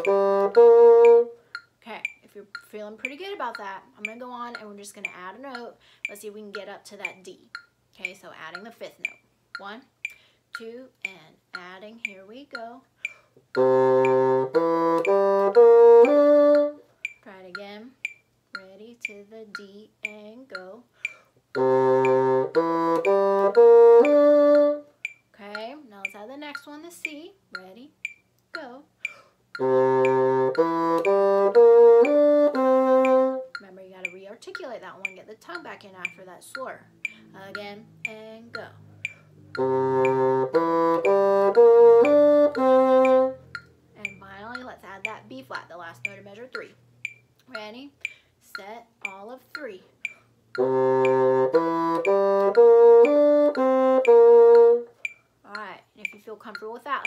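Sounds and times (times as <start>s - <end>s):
bassoon playing arpeggio: 0.0s - 1.5s, 13.5s - 16.8s, 21.6s - 24.9s, 29.6s - 33.6s, 38.9s - 43.5s, 50.6s - 55.0s.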